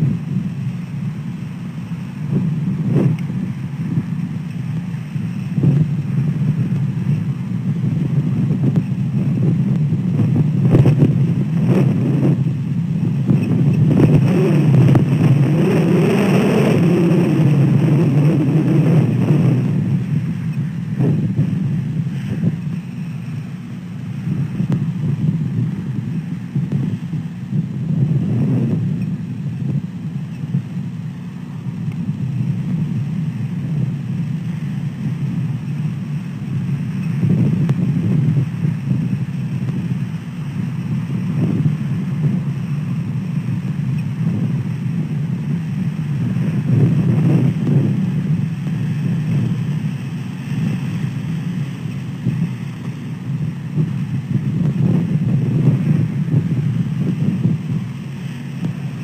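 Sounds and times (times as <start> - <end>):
wind buffeting microphone: 0.0 - 59.0.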